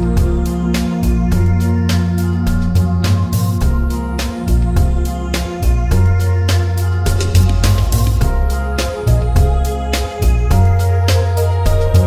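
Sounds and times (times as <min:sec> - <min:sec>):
keyboard instrumental with beat: 0:00.0 - 0:12.0.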